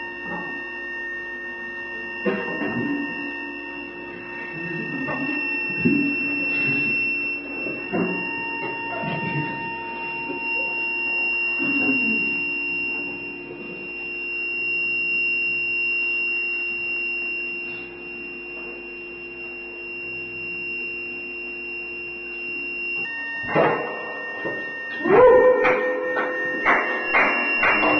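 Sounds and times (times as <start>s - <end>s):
drone of held tones: 0.0s - 27.9s.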